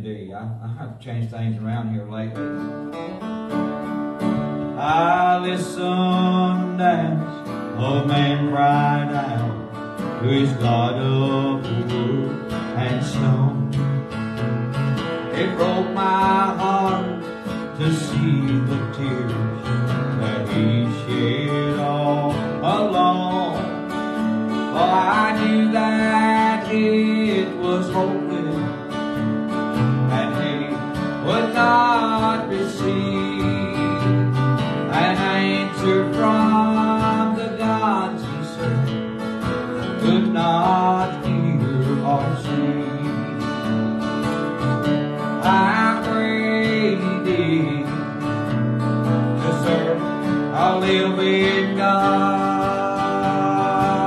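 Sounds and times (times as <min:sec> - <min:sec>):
strummed acoustic guitar: 0:00.0 - 0:54.0
man singing: 0:04.6 - 0:54.0.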